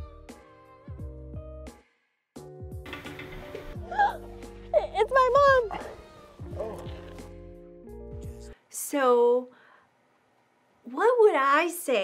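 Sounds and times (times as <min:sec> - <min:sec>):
soft background music: 0:02.4 - 0:09.2
woman squealing: 0:03.8 - 0:06.4.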